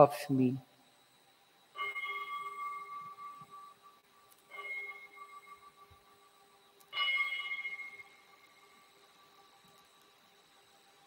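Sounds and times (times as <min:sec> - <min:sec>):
altar bell ringing: 0:01.7 - 0:09.6.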